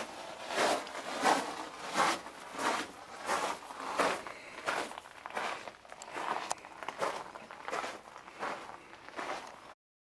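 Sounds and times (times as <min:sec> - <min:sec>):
footsteps on gravelly sand: 0:00.0 - 0:09.8.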